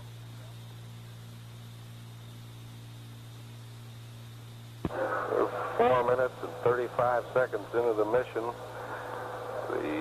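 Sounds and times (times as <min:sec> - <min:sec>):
recording hum and hiss: 0:00.0 - 0:10.0
man speaking over radio: 0:04.9 - 0:10.0.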